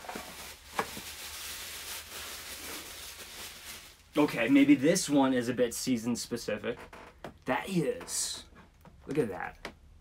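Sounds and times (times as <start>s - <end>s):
paper wrapping rustling: 0.0s - 4.8s.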